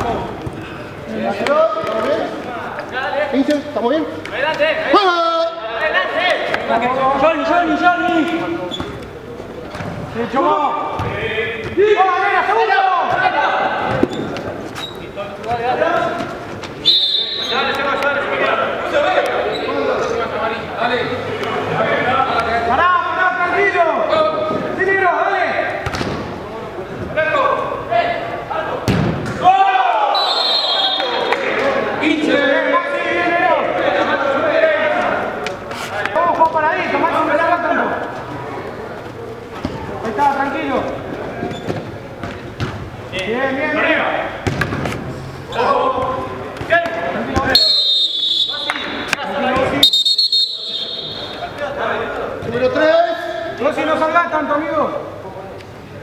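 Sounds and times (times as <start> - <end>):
ball thudding off feet and boards: 28.8 - 29.4, 44.4 - 45.0
players shouting indoors: 29.4 - 35.4.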